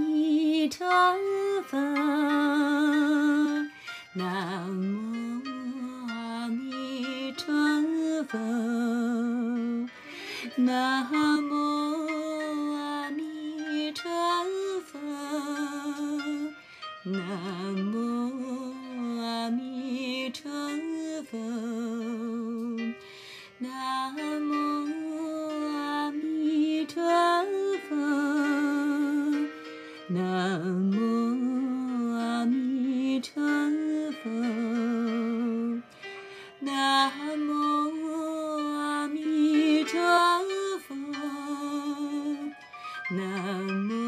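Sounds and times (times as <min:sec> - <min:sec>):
soft accompaniment: 0:00.0 - 0:44.0.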